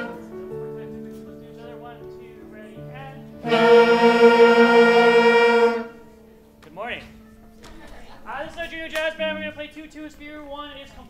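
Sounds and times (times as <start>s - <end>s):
brass band holding loud note: 0.0s - 0.4s, 3.4s - 6.0s.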